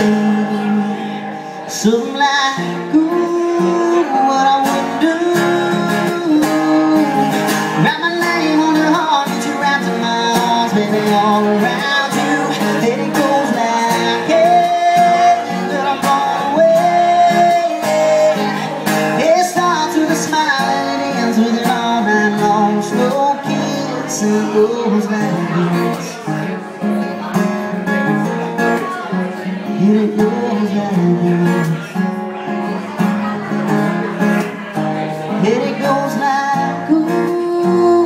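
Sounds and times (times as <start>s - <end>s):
man's wordless vocals: 0.0s - 26.6s, 28.9s - 32.2s, 35.0s - 38.0s
acoustic guitar strumming: 0.0s - 38.0s.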